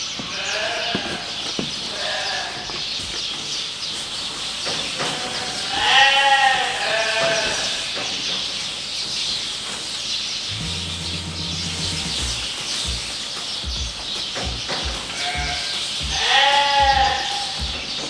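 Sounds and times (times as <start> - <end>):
sheep bleating: 0.3 - 1.3, 1.9 - 2.7, 5.1 - 7.9, 15.1 - 17.9.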